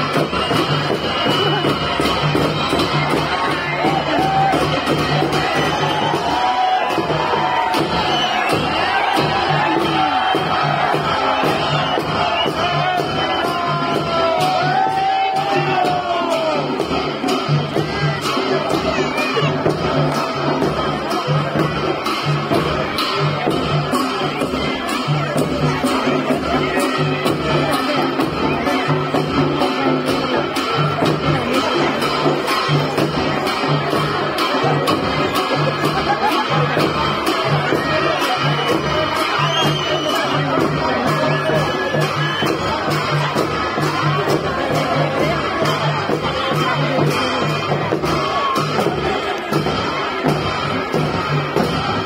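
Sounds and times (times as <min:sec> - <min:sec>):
crowd cheering and shouting: 0:00.0 - 0:52.0
folk music: 0:00.0 - 0:52.0
steady drum beat: 0:00.0 - 0:52.0.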